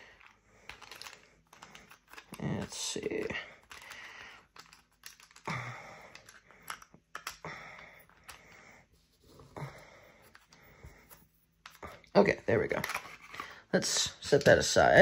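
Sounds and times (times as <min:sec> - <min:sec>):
tiles sliding and rustling: 0:00.0 - 0:15.0.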